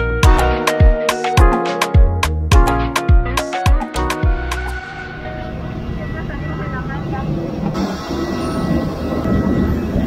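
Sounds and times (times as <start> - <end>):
airliner low roar: 4.4 - 10.0
thin high whine: 4.7 - 10.0
passengers' voices: 4.8 - 10.0.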